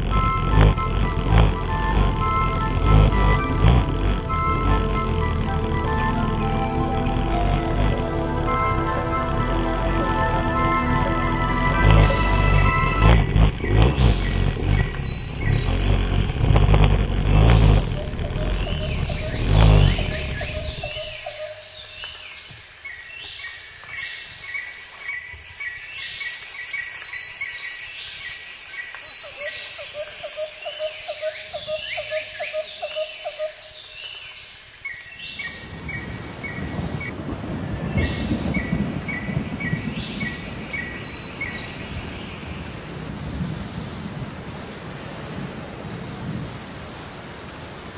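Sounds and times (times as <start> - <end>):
low rumble: 0.0 - 21.4
low rushing noise: 0.0 - 21.9
birds chirping and singing: 0.0 - 37.1, 37.8 - 43.1.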